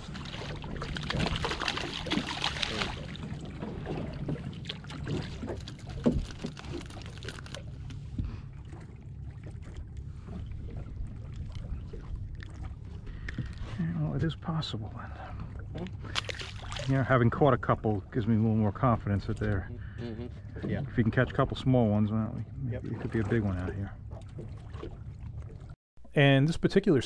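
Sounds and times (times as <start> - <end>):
water lapping against boat: 0.0 - 25.8.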